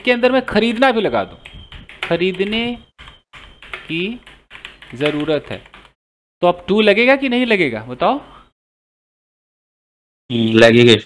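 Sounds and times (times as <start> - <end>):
keyboard keys clicking: 0.7 - 6.0.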